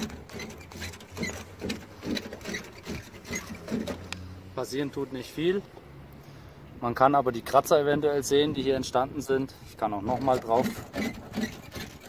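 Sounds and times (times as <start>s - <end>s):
wire brush scratching on film: 0.0s - 4.1s, 9.7s - 12.0s.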